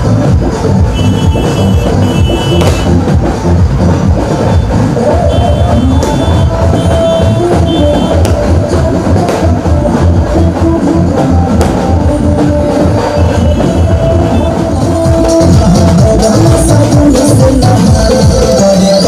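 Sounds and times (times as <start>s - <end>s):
music with heavy bass beat: 0.0s - 19.0s.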